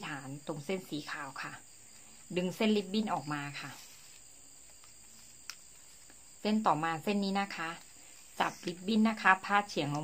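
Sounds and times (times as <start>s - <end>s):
woman speaking: 0.0s - 1.7s, 2.3s - 4.0s, 6.4s - 10.0s.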